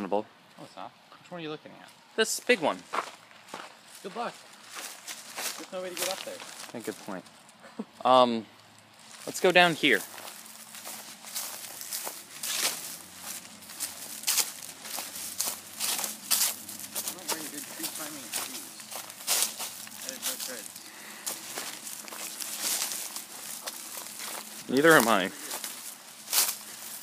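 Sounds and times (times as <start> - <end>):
footsteps crunching through dry leaves: 2.5 - 7.6, 8.7 - 27.0
rustling through brush: 2.8 - 8.0, 8.6 - 27.0.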